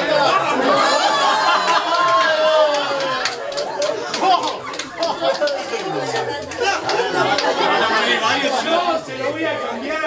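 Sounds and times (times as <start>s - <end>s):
group chatter: 0.0s - 10.0s.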